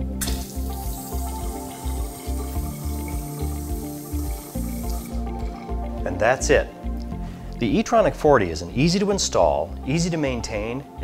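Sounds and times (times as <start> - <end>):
faucet water running into sink: 0.1 - 5.8.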